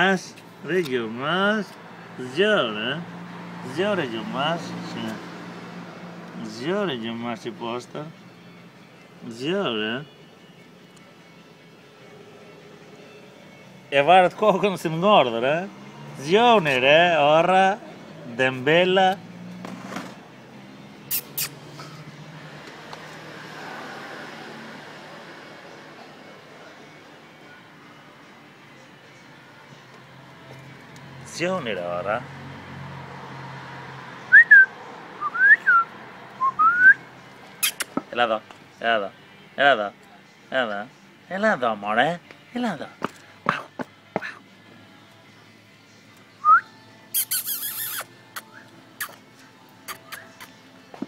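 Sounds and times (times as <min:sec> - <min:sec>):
road traffic: 0:00.0 - 0:51.0
person whistling: 0:34.3 - 0:37.0, 0:46.4 - 0:48.7.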